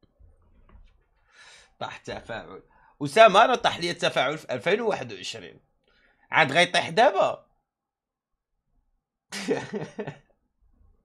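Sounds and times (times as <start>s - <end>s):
man coughing laugh: 9.4s - 10.2s.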